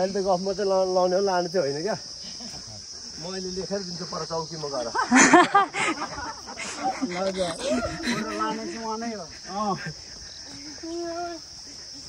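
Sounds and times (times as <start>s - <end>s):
insects shrilling: 0.0s - 12.0s.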